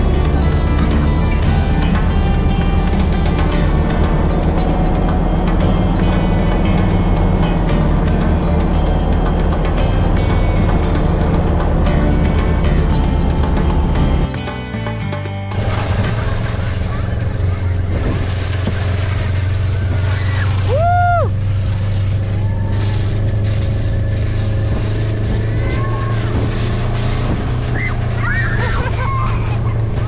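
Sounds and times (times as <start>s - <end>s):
vehicle engine low drone: 0.0s - 30.0s
shouts: 20.1s - 21.4s, 25.5s - 26.5s, 27.7s - 29.8s.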